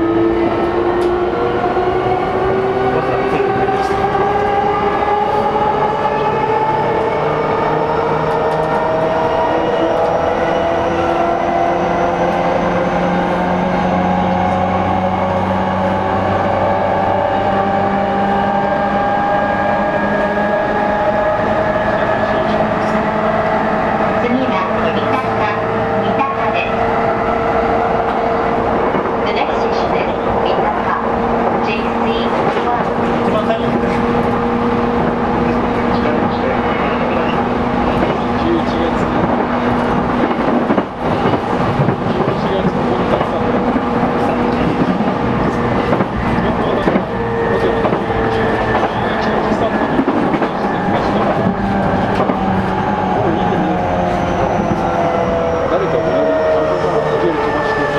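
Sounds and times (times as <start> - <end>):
wheels rumbling on rail: 0.0 - 57.9.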